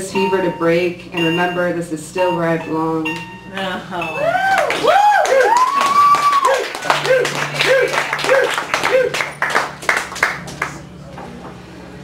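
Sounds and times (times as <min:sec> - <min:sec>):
people whooping: 0:04.2 - 0:09.7
audience clapping: 0:04.5 - 0:10.9.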